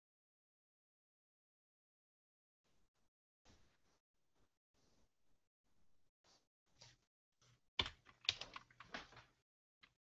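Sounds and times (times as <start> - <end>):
typing on computer keyboard: 7.8 - 10.0.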